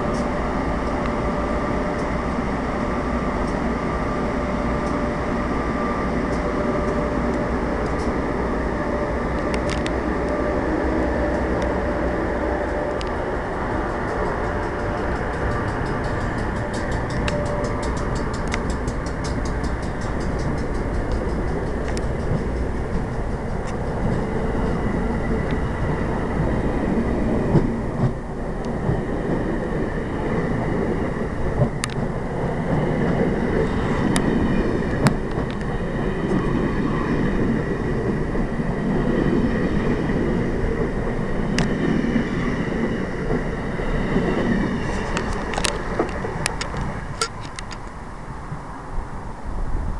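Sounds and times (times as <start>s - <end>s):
train wheel clicks: 0.0s - 2.2s, 6.3s - 8.3s, 12.6s - 36.6s, 38.9s - 48.0s
passenger train rumbling past: 0.0s - 49.9s.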